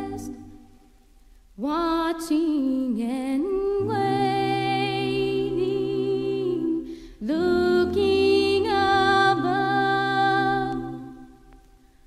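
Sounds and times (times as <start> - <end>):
unaccompanied vocal harmony: 0.0 - 0.8, 1.7 - 11.6.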